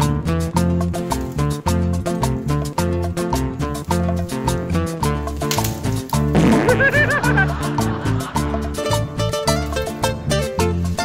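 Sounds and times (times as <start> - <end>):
upbeat latin-style music: 0.0 - 11.0
wobbling comic sound effect: 6.3 - 7.5.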